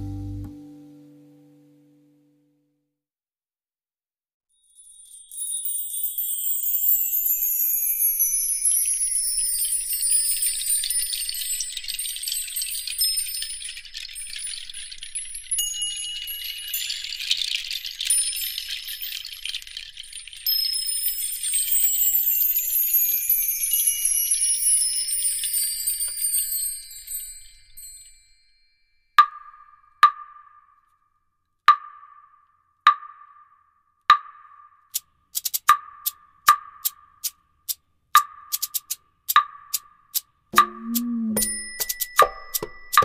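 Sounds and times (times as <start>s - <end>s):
shimmering chime tones: 4.5s - 29.1s, 40.8s - 43.0s.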